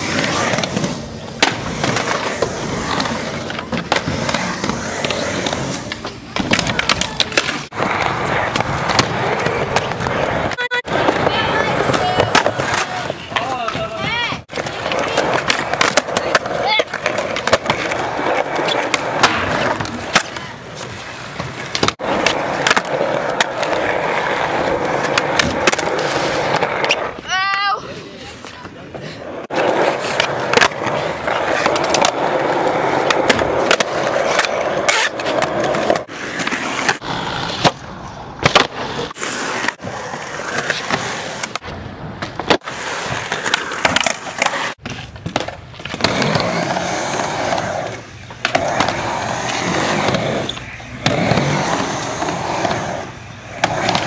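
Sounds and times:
skateboards rolling on concrete: 0.0 - 54.0.

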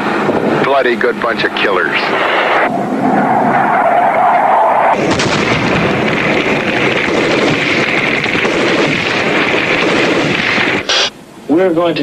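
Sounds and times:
explosions: 4.9 - 11.1
rapid gunfire crackling: 5.0 - 11.1.

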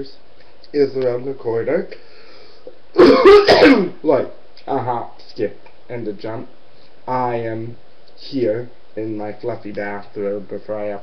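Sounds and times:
man coughing: 3.0 - 4.0.

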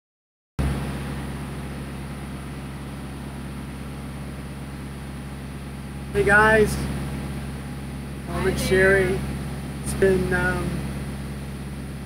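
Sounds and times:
boat engine droning: 0.6 - 12.0.

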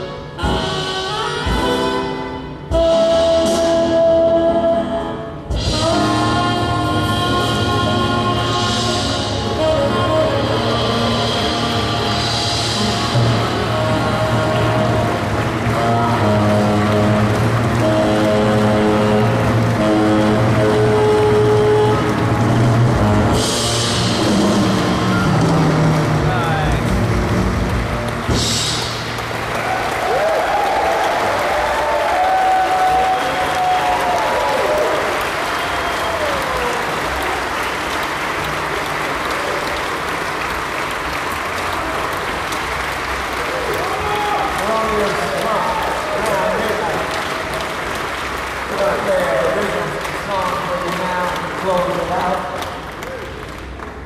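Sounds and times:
live jazz quartet playing: 0.0 - 29.3
audience applauding and cheering: 7.3 - 54.0.

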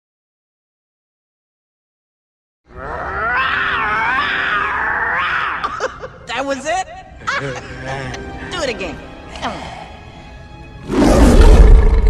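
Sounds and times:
cartoon lion roar with deep bass: 10.8 - 12.0.

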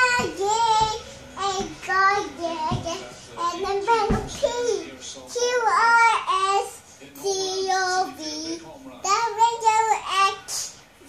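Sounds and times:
girl singing: 0.0 - 10.7.

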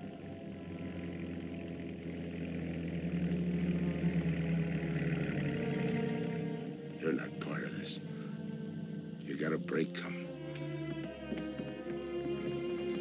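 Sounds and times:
sustained film music chords: 0.0 - 13.0.

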